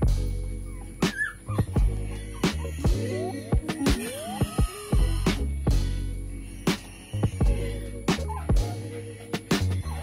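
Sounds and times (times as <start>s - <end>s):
music with steady beat: 0.0s - 10.0s
puppy whimpering: 0.7s - 4.9s.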